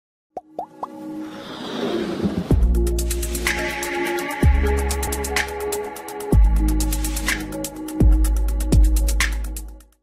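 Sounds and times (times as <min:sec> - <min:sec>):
intro music: 0:02.2 - 0:09.9.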